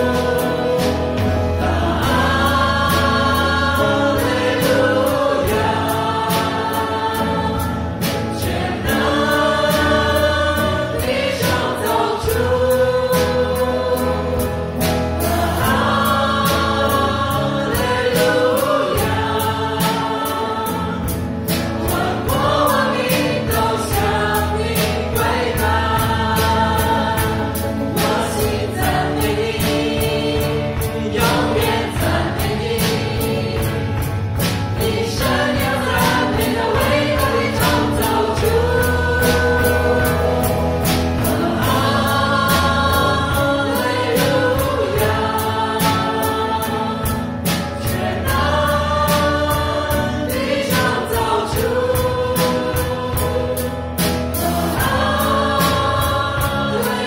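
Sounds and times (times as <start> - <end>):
drums keeping steady beat: 0.0 - 57.0
keyboard: 0.0 - 57.0
male and female singers: 0.0 - 57.0.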